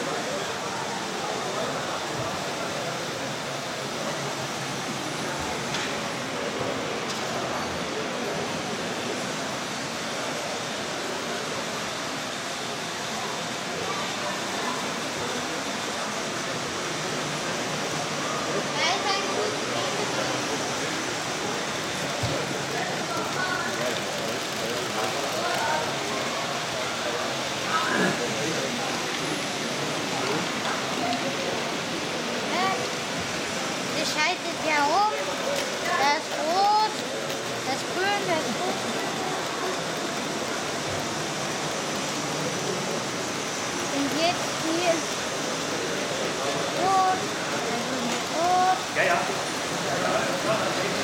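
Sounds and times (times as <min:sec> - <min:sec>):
rushing hall background noise: 0:00.0 - 0:51.0.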